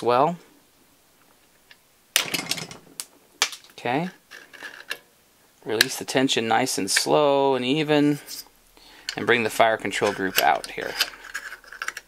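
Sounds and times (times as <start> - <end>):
metal-on-metal scraping: 8.2 - 12.0.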